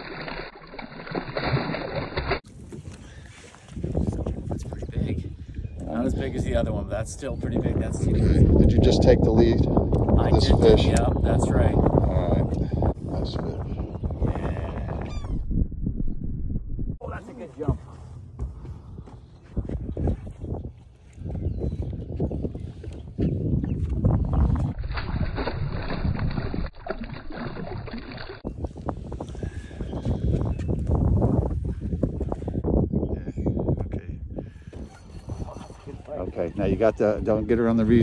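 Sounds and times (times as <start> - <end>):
fish thrashing and splashing: 0.0 - 2.4, 24.6 - 28.5
water sloshing around boat: 0.0 - 4.4, 24.4 - 28.5
wind on microphone: 2.5 - 38.0.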